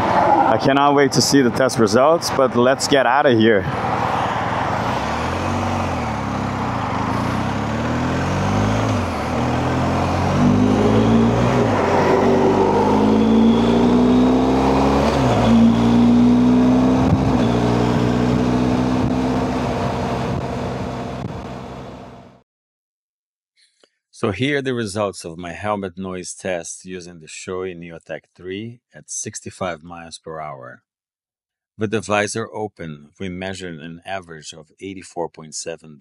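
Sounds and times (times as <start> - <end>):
motorcycle engine at speed: 3.8 - 22.3
wind rushing: 10.4 - 15.6.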